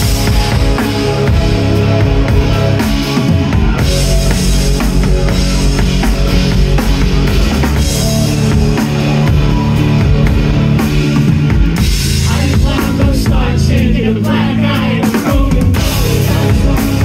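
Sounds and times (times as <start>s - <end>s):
electric guitar: 0.0s - 13.8s
bass guitar: 0.0s - 17.0s
drum kit: 0.0s - 17.0s.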